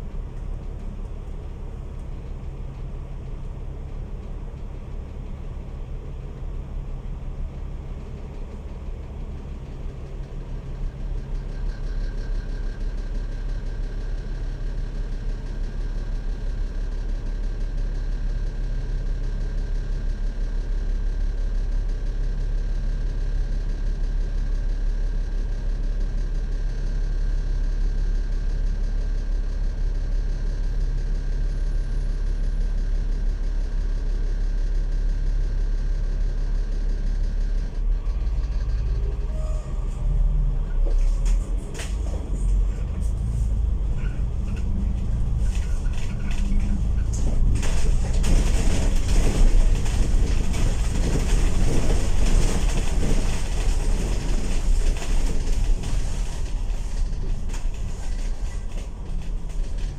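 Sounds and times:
bus engine idling hum: 0:00.0 - 0:59.9.

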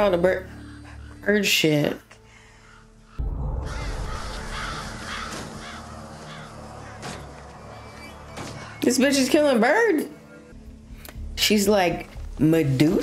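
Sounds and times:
film score music: 0:00.0 - 0:13.0
crows cawing: 0:02.3 - 0:08.8.

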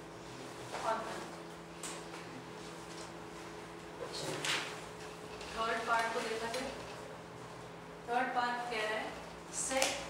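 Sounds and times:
woman's voice: 0:05.6 - 0:06.8, 0:08.1 - 0:10.0.

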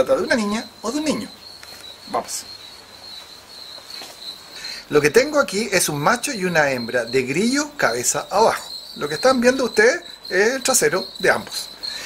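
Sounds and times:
crickets chirping: 0:00.0 - 0:12.0.

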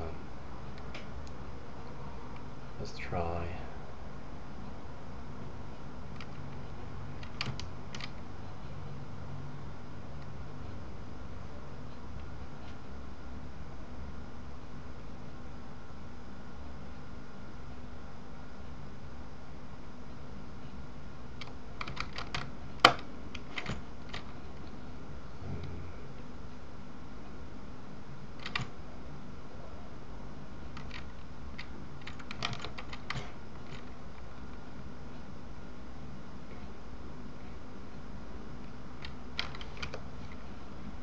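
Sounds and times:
steady low hum: 0:00.0 - 0:41.0
computer keyboard and mouse clicks: 0:06.2 - 0:06.6, 0:07.2 - 0:08.2, 0:21.4 - 0:24.4, 0:28.4 - 0:28.7, 0:30.7 - 0:33.9, 0:39.0 - 0:40.4.

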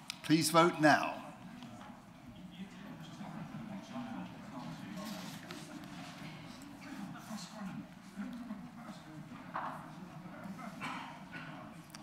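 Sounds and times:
faint murmuring voices: 0:01.2 - 0:12.0.

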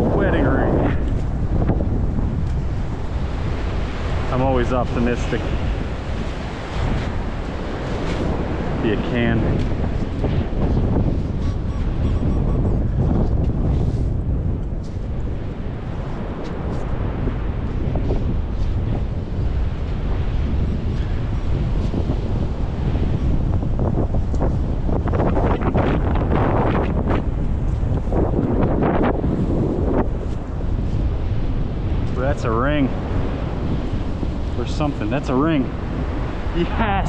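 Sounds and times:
surf washing in: 0:00.0 - 0:37.0
wind buffeting microphone: 0:00.0 - 0:37.0.

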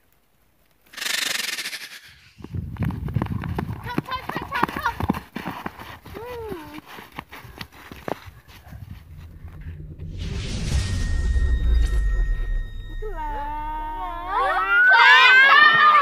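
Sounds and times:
hiss: 0:00.9 - 0:02.5
children calling out: 0:13.1 - 0:16.0.

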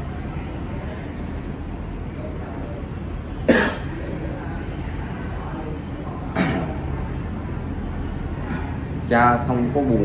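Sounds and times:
man coughing: 0:03.5 - 0:03.9.

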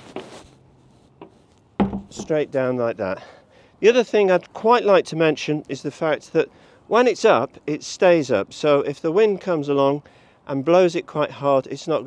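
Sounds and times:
hatch shutting with a thud: 0:01.8 - 0:02.4.

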